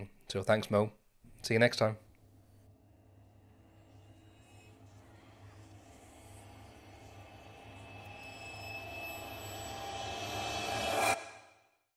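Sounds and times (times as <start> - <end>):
high steady tones: 2.6 - 11.4
low drone: 2.6 - 11.8
swelling riser: 2.7 - 11.8.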